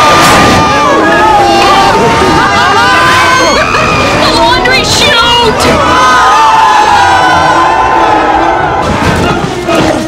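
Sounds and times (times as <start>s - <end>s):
people screaming: 0.0s - 10.0s.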